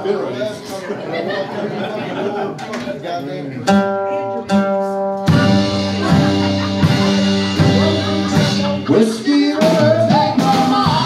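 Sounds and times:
live country band playing: 0:03.6 - 0:11.0.

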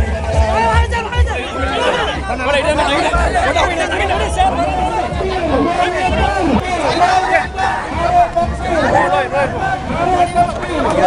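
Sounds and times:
crowd of men talking and calling: 0:00.0 - 0:11.0
low thuds: 0:02.2 - 0:11.0.

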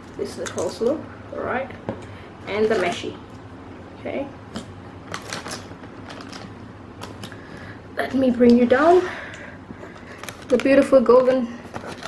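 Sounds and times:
cardboard and plastic crackling: 0:04.5 - 0:07.3, 0:10.0 - 0:12.0.

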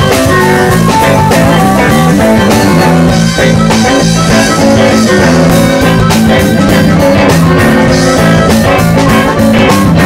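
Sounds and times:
bass line: 0:00.0 - 0:10.0
drum kit: 0:00.0 - 0:10.0
electric guitar: 0:00.0 - 0:10.0.

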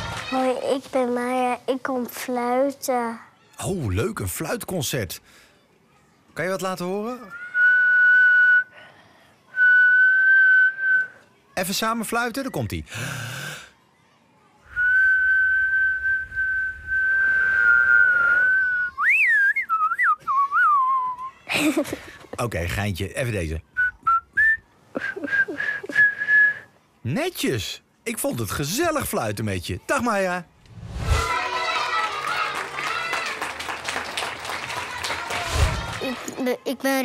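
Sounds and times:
girl whistling high notes: 0:14.7 - 0:21.4.

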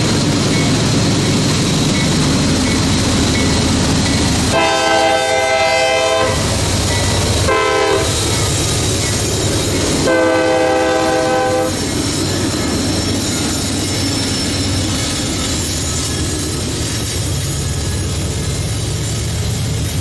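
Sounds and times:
diesel locomotive engines rumbling: 0:00.0 - 0:20.0
locomotive horn blasts: 0:04.5 - 0:06.5, 0:07.4 - 0:08.2, 0:10.0 - 0:11.8.

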